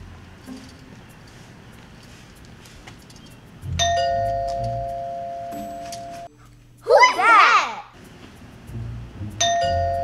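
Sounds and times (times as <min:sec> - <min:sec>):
doorbell ding-dong chime: 0:03.8 - 0:06.3, 0:09.4 - 0:10.0.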